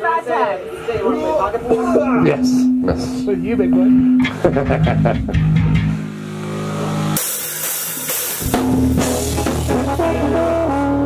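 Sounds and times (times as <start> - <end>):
electric guitar and bass noodling: 0.6 - 7.3, 8.4 - 11.0.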